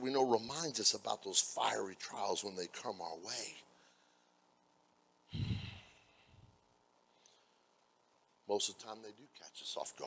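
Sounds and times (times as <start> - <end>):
man sighing: 5.3 - 6.1.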